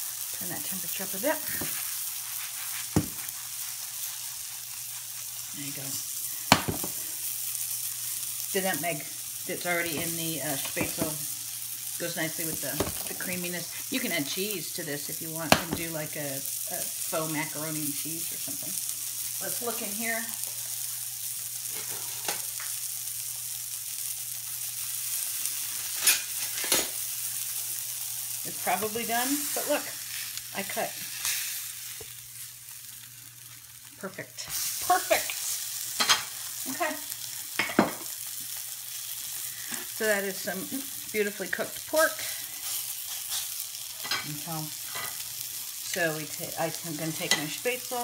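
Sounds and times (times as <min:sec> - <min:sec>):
oil popping and crackling: 0:00.0 - 0:14.1
food sizzling in pans: 0:00.0 - 0:48.0
pan knocking on cooktop: 0:02.9 - 0:03.2, 0:06.5 - 0:07.0.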